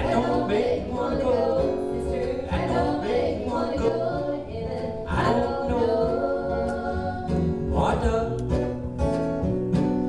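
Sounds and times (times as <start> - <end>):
group singing: 0.0 - 8.3
acoustic guitar: 0.0 - 10.0
electric bass: 0.0 - 10.0.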